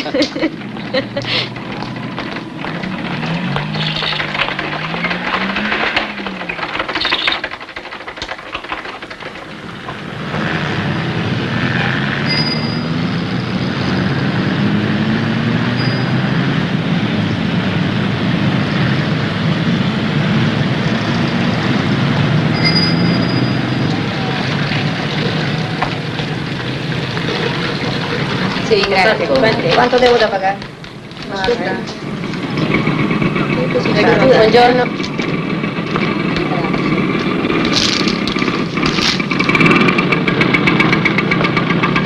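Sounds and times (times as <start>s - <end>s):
voices chattering: 0.0s - 7.6s, 23.0s - 39.7s
street noise: 0.0s - 42.0s.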